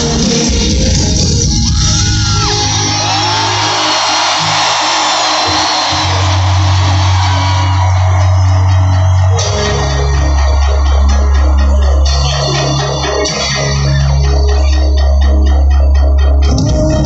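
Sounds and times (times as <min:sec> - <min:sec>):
crowd screaming and singing: 0:00.0 - 0:17.0
live rock band playing: 0:00.0 - 0:17.0.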